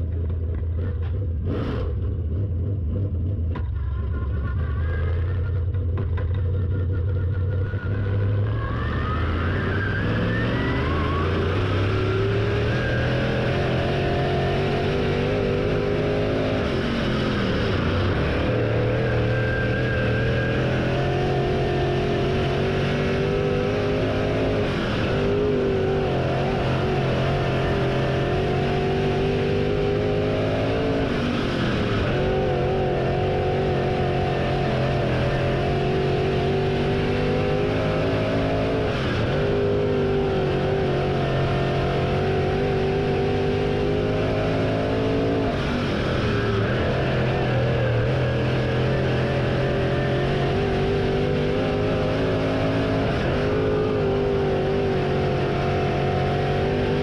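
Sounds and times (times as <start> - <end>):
race car engine revving: 0.0 - 57.0.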